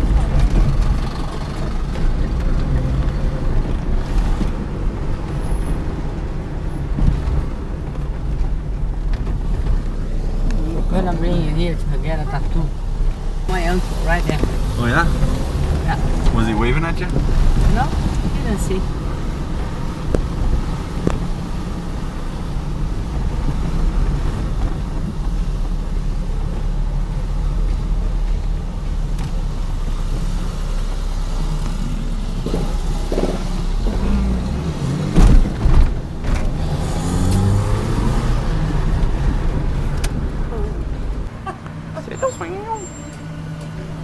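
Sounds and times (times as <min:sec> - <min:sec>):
car engine and road noise: 0:00.0 - 0:44.0.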